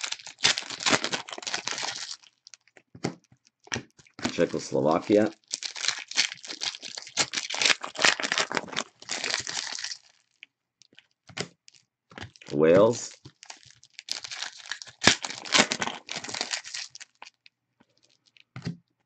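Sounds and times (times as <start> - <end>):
foil wrappers crinkling and tearing: 0.0 - 2.8, 3.6 - 11.0, 11.7 - 18.5.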